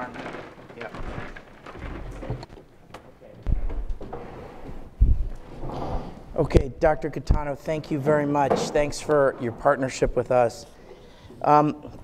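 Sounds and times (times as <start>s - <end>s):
microphone handling thumps: 3.4s - 7.5s.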